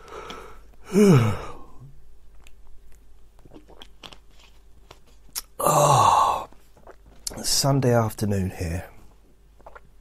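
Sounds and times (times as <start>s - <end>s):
man sighing: 0.2s - 1.9s, 5.6s - 6.5s
wet mouth clicks and smacks: 2.3s - 5.6s, 9.6s - 9.9s.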